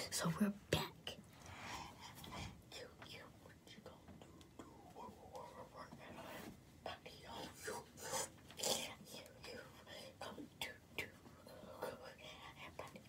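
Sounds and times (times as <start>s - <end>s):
person whispering: 0.0s - 13.0s.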